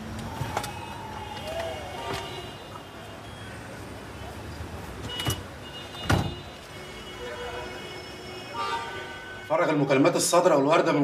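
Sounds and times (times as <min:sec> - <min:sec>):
car door thump: 0:06.0 - 0:06.4.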